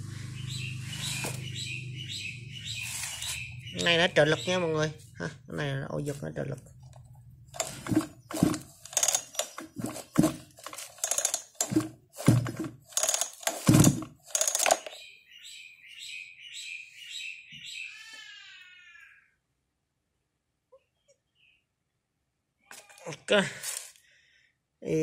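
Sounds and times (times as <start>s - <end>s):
chainsaw recoil starter pulls: 7.6s - 15.0s.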